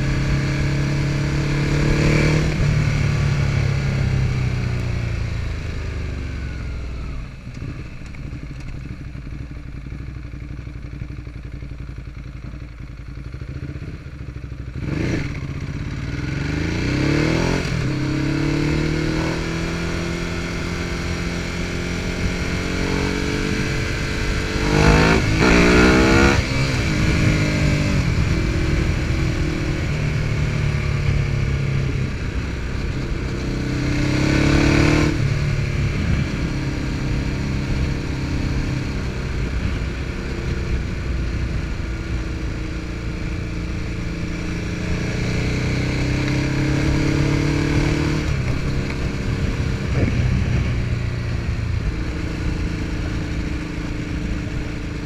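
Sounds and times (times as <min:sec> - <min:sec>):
motorcycle engine accelerating: 0:00.0 - 0:55.0
wind noise: 0:31.4 - 0:42.6, 0:44.4 - 0:55.0.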